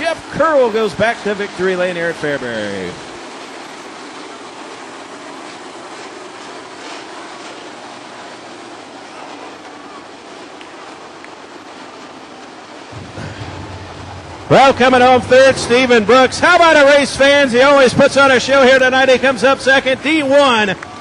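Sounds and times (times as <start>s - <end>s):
distant race car engine: 12.6s - 21.0s.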